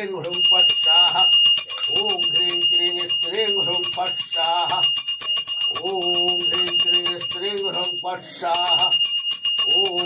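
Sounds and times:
man chanting: 0:00.0 - 0:04.9, 0:05.8 - 0:09.0, 0:09.6 - 0:10.0
bell ringing rapidly: 0:00.2 - 0:10.0.

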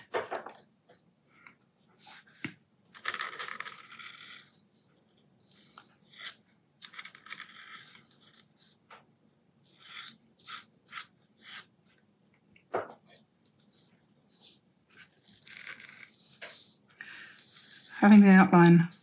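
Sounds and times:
pen nib scratching on paper: 0:05.4 - 0:08.7, 0:09.7 - 0:11.7, 0:14.2 - 0:18.2.

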